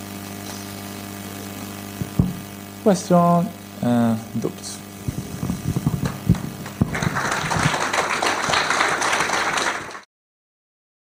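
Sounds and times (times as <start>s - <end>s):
sharp knocks: 2.0s - 2.4s
audience applauding: 5.7s - 10.1s.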